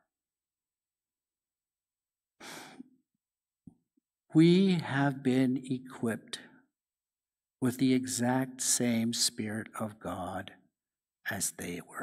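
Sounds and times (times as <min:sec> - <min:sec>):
man breathing: 0:02.4 - 0:02.9.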